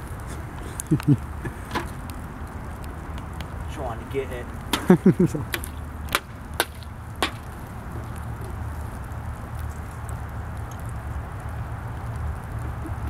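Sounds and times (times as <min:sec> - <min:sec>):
wooden stick knocking: 0:04.7 - 0:07.5.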